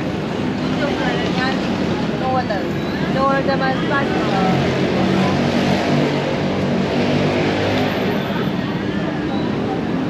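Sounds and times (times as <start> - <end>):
road traffic hum: 0.0 - 10.0
people talking: 0.7 - 5.6.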